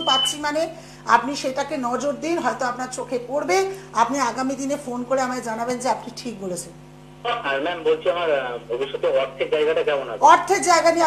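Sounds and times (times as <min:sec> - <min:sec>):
woman speaking: 0:00.0 - 0:06.8, 0:10.2 - 0:11.0
steady low hum: 0:00.0 - 0:11.0.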